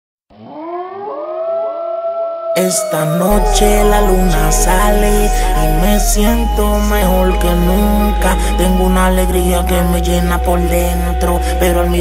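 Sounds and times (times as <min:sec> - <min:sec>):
air raid siren wailing: 0:00.6 - 0:12.0
reggaeton song: 0:02.6 - 0:12.0.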